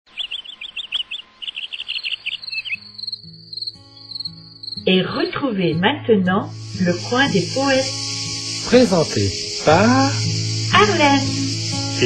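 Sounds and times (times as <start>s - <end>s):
birds chirping: 0.0s - 5.3s, 6.5s - 12.0s
insect pulsing trill: 0.1s - 5.2s, 6.5s - 12.0s
soft low music notes: 4.9s - 12.0s.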